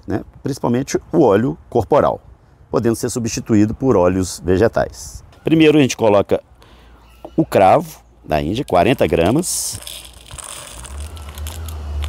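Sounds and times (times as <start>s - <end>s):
cloves pouring into plastic jug: 8.6s - 12.0s.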